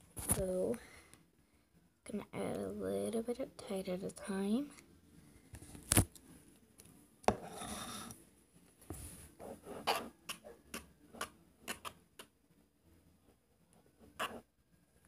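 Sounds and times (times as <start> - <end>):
tool scraping plastic bowl: 7.3 - 8.2.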